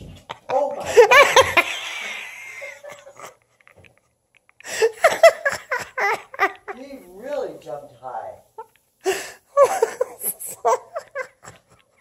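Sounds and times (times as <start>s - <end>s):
woman laughing: 4.7s - 6.8s, 8.6s - 11.8s.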